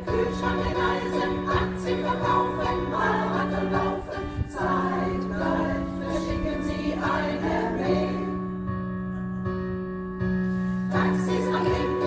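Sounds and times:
women's choir singing: 0.0 - 8.6, 10.9 - 12.0
electric keyboard: 0.0 - 12.0.

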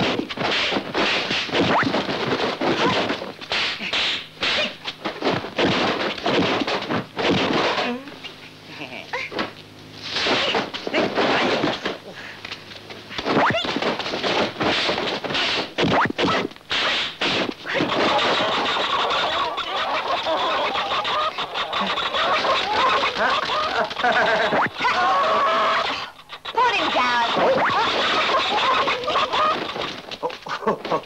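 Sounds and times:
chicken squawking and clucking: 17.6 - 31.0.

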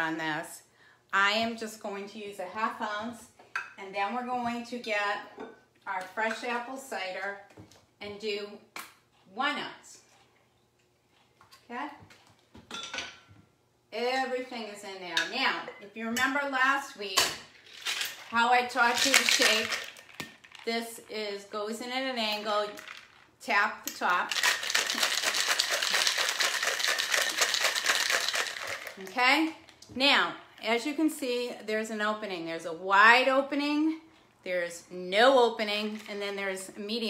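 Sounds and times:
woman speaking: 0.0 - 5.3, 5.9 - 7.4, 9.3 - 10.0, 11.6 - 12.1, 13.9 - 17.4, 18.3 - 19.9, 20.6 - 25.0, 28.9 - 37.0
ice rattling in cocktail shaker: 17.6 - 20.8, 22.6 - 23.2, 24.1 - 29.2.

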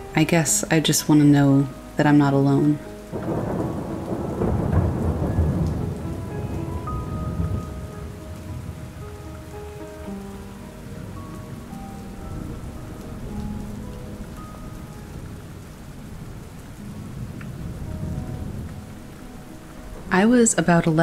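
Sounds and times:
soft slow background music: 0.0 - 21.0
steady rain: 0.0 - 21.0
thunder rumbling: 2.6 - 21.0.

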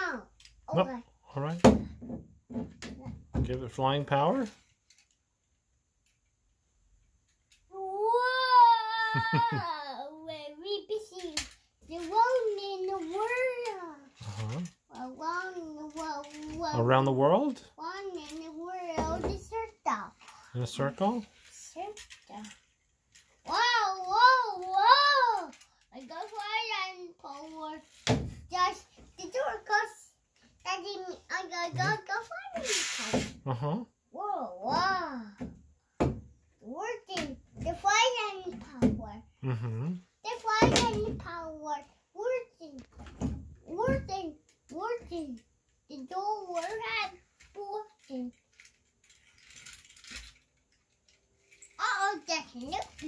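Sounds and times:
child exclaiming: 0.0 - 1.1, 7.7 - 14.1, 14.9 - 16.8, 23.5 - 27.8, 30.7 - 33.2, 34.1 - 35.4, 36.6 - 39.6, 40.2 - 42.8, 43.7 - 48.3, 51.8 - 53.0
child murmuring: 7.7 - 10.8, 39.4 - 40.0
toy airplane wheels rattling whir: 9.8 - 30.0, 30.6 - 33.2, 43.7 - 53.0.

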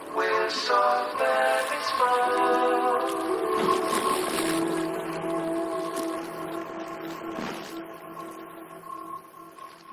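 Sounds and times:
soft synth chords: 0.0 - 9.9.

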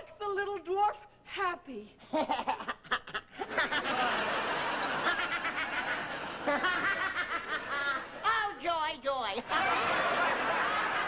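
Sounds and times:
man laughing loudly: 2.1 - 4.3, 4.9 - 8.1
studio audience laughing: 2.2 - 8.3, 9.4 - 11.0.

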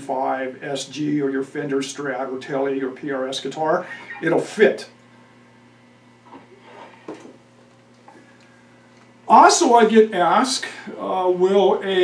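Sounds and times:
steady electrical hum: 0.0 - 12.0.

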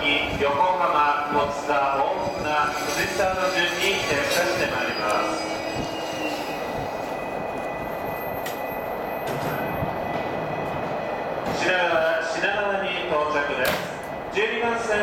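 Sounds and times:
electric train rumbling and braking: 0.0 - 15.0
high squealing of wheels and brakes: 2.0 - 10.3.

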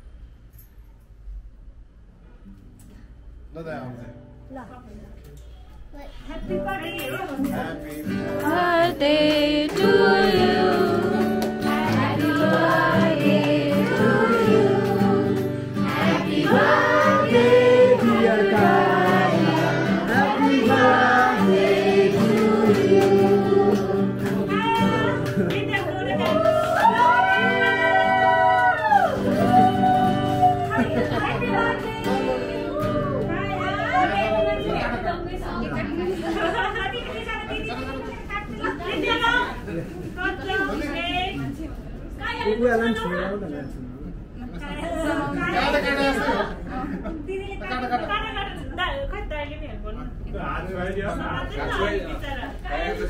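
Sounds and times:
musical backing: 6.4 - 35.5
voices singing together: 8.4 - 25.1, 26.4 - 30.4
adults and children chattering: 30.0 - 50.3.

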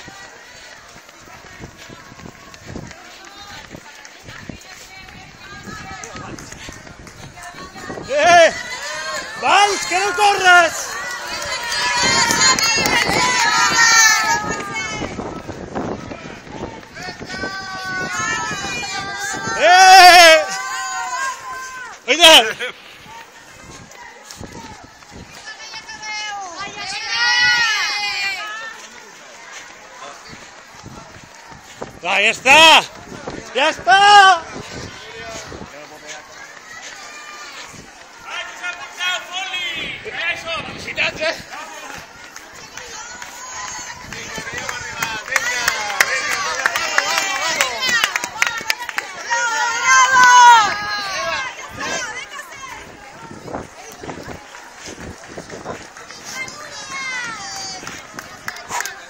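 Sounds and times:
people calling out: 0.0 - 59.0
running footsteps on asphalt: 0.0 - 59.0.

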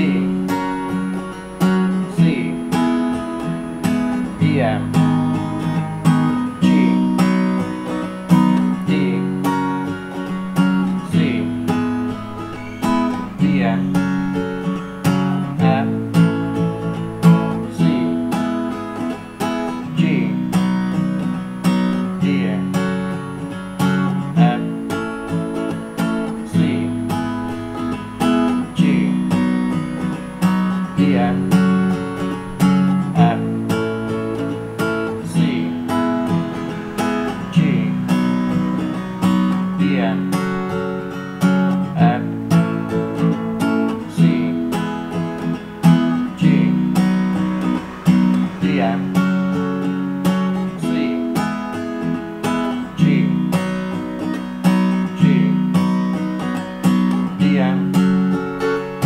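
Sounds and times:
acoustic guitar strumming chords: 0.0 - 59.0.

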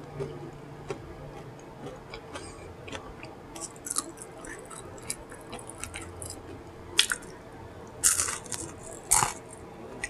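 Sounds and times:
wet mouth chewing: 0.9 - 9.6.

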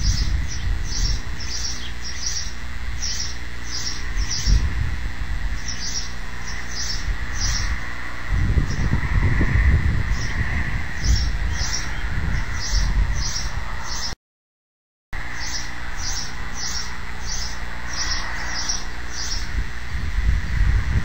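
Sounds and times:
small bird chirping: 0.0 - 4.7, 5.5 - 9.1, 10.0 - 14.2, 15.3 - 19.6
low rumbling noise: 0.0 - 14.1, 15.2 - 21.0.

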